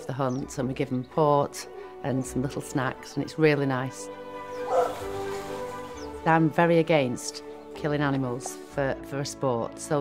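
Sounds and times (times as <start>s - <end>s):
background music: 0.0s - 10.0s
dog yelping: 4.6s - 5.0s.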